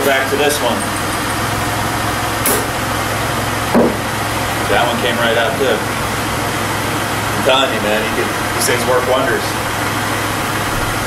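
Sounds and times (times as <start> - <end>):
steady background hum: 0.0 - 11.0
suction cup pop: 2.4 - 2.7.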